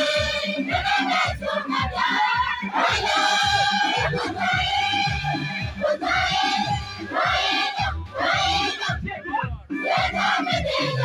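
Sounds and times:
large choir singing: 0.0s - 9.0s, 9.8s - 11.0s
pulsing low beat: 0.0s - 11.0s.

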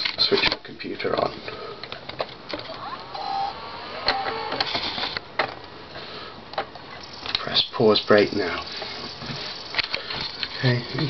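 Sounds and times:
cd drive spinning up: 2.5s - 5.2s.

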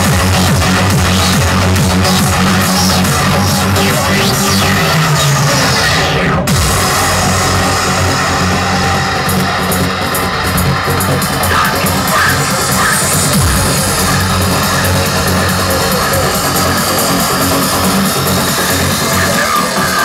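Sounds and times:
loud trance music: 0.0s - 20.0s.

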